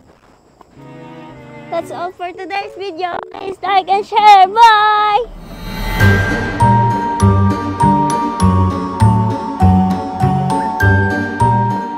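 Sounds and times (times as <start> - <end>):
tinkling melody over bass pulse: 5.5 - 9.8.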